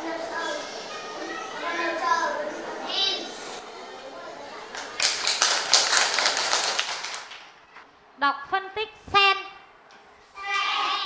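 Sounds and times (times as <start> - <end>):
children clapping: 4.7 - 7.6.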